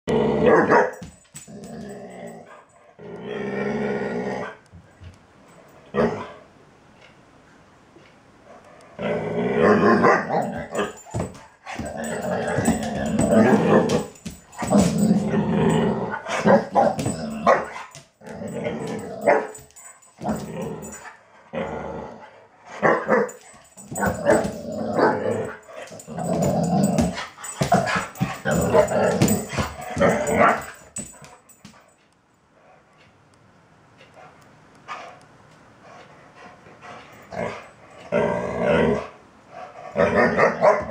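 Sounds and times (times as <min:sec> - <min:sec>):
dog play-growling and barking: 0:00.1 - 0:04.6, 0:05.5 - 0:06.5, 0:08.4 - 0:32.0, 0:35.8 - 0:40.9.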